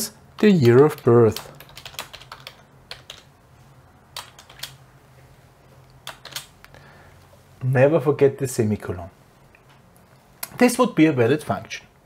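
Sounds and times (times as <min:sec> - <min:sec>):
keyboard typing: 0:00.3 - 0:03.3, 0:04.1 - 0:04.8, 0:06.0 - 0:06.7.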